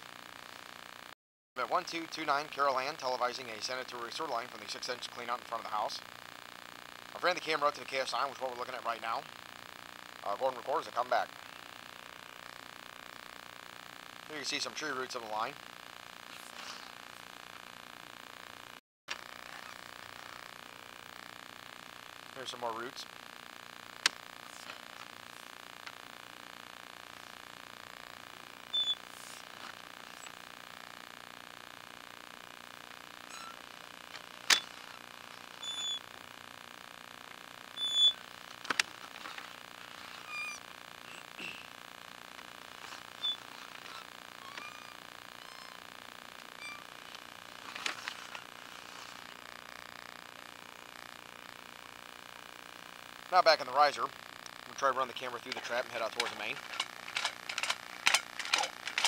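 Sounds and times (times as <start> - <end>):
electrical hiss and hum: 0.0 - 59.0
short high squeaks: 28.8 - 29.0, 33.3 - 33.6, 35.6 - 36.0, 37.8 - 38.2, 40.2 - 41.2, 43.2 - 45.9, 46.5 - 47.0
sharp clicks: 55.5 - 59.0.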